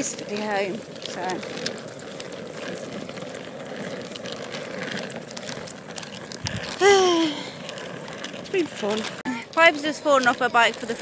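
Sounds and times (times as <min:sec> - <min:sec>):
outdoor background noise: 0:00.0 - 0:11.0
person crying out: 0:06.8 - 0:07.5.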